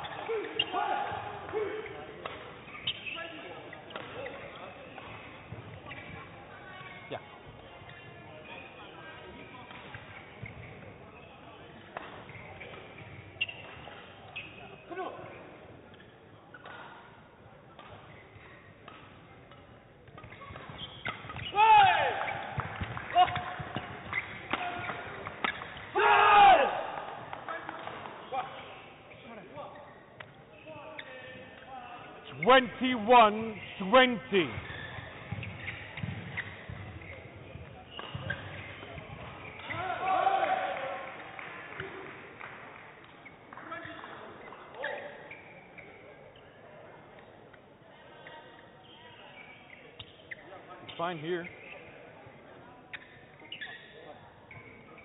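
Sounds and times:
shoe squeaks: 0:00.0 - 0:17.0, 0:18.0 - 0:18.8, 0:20.2 - 0:25.9, 0:28.2 - 0:40.2, 0:43.1 - 0:46.6, 0:48.1 - 0:55.0
rackets striking shuttlecock: 0:01.4 - 0:03.2, 0:03.9 - 0:06.2, 0:11.8 - 0:14.4, 0:17.8 - 0:21.6, 0:22.2 - 0:26.0, 0:34.5 - 0:39.8
players shouting: 0:25.9 - 0:27.1.

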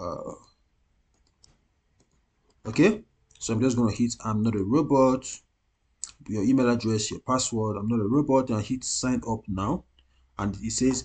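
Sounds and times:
computer mouse clicks: 0:01.1 - 0:02.6.

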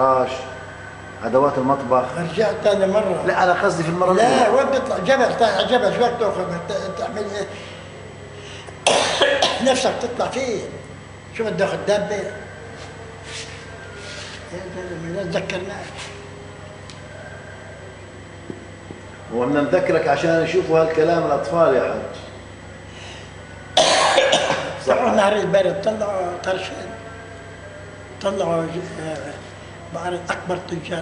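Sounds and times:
faint room hum: 0:00.0 - 0:31.0
man speaking: 0:01.2 - 0:07.8, 0:09.6 - 0:12.6, 0:24.8 - 0:27.0
man coughing: 0:08.8 - 0:10.0, 0:23.8 - 0:24.8.

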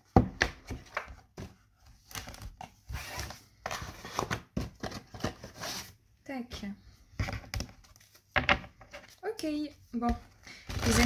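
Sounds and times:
cards shuffled and tapped: 0:00.1 - 0:02.9.

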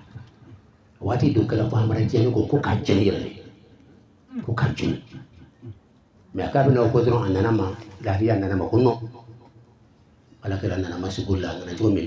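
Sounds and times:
man speaking into a microphone: 0:01.0 - 0:05.5, 0:06.3 - 0:09.4, 0:10.4 - 0:12.0.

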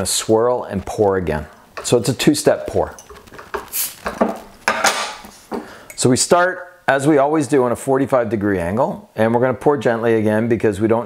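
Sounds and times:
gas hissing from bottle: 0:03.6 - 0:04.1.

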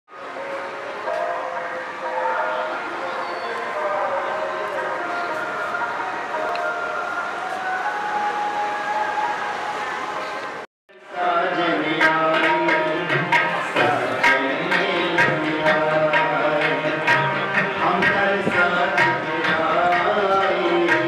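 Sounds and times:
harmonium chords: 0:11.2 - 0:21.0.

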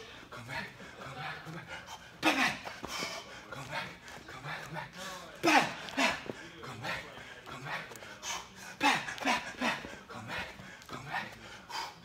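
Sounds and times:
man breathing hard and grunting: 0:00.0 - 0:12.0.

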